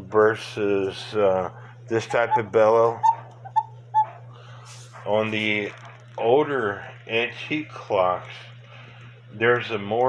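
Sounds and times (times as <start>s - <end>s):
cuckoo clock bellows pipe tooting: 2.0s - 4.2s.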